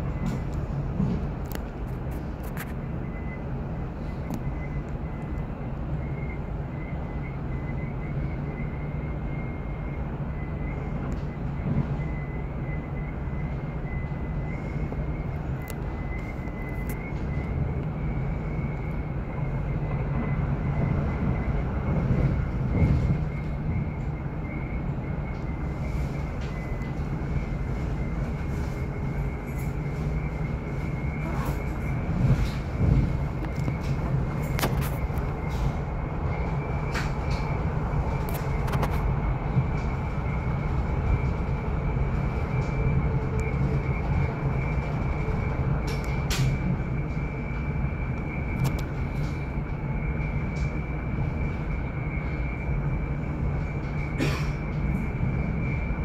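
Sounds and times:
train low rumble: 0.0s - 56.0s.

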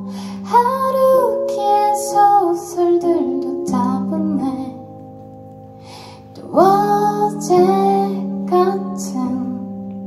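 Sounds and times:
woman singing: 0.0s - 4.9s, 6.3s - 10.0s
electric keyboard: 0.0s - 10.0s.

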